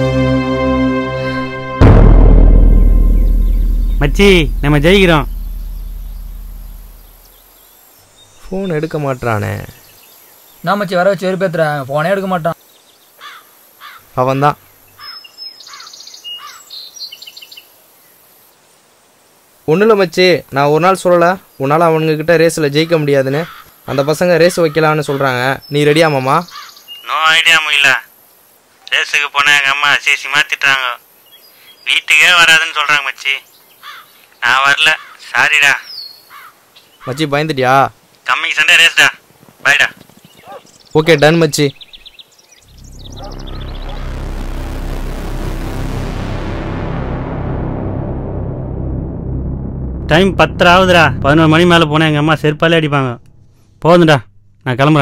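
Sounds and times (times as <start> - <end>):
low rumbling drone: 0.3 - 7.5, 42.6 - 55.0
high bird chirps: 3.0 - 8.8, 41.7 - 44.3
birds calling: 12.4 - 18.2, 22.8 - 27.2, 33.4 - 37.3, 39.3 - 44.2
faint bird chirps: 12.5 - 18.6, 40.2 - 44.1
rapid bird trill: 41.8 - 44.2.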